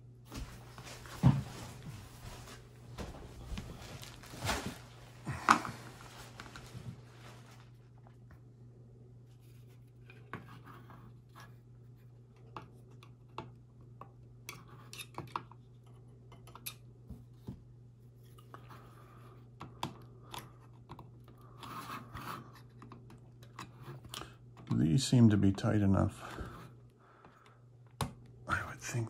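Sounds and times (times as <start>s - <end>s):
steady low hum: 0.0s - 15.0s, 15.6s - 29.0s.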